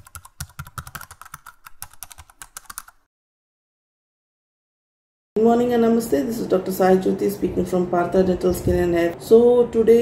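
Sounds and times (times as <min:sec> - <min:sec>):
keyboard typing: 0:00.0 - 0:03.1.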